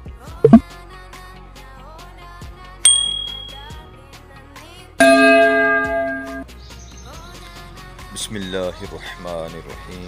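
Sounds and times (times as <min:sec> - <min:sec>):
bell chime: 0:02.9 - 0:03.8, 0:05.0 - 0:06.4.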